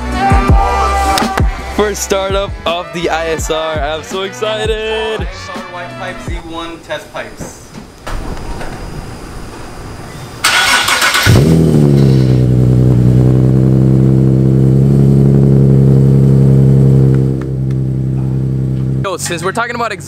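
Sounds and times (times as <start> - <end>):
car engine revving and idling: 10.4 - 20.0.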